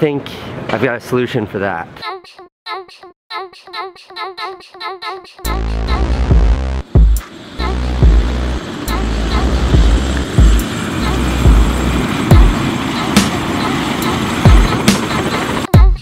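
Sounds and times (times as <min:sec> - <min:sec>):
electronic music with bass thumps: 0:05.5 - 0:10.6, 0:11.4 - 0:12.6
helicopter engine and rotor: 0:07.2 - 0:15.7.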